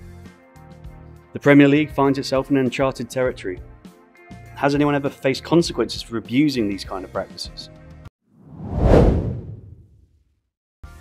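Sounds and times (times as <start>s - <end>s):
whoosh transition: 8.4s - 10.0s.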